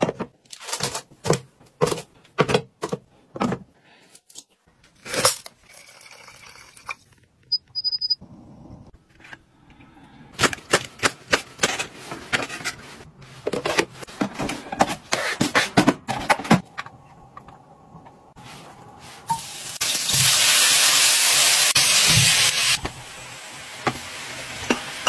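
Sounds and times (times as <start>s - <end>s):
kitchen items clicking and knocking: 0.0s - 3.7s, 10.4s - 17.6s
short high electronic beeps: 7.5s - 8.2s.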